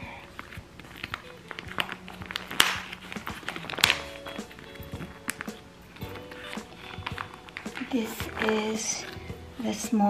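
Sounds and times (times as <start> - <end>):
background music: 0.0 - 10.0
plastic packaging crinkling: 0.0 - 10.0.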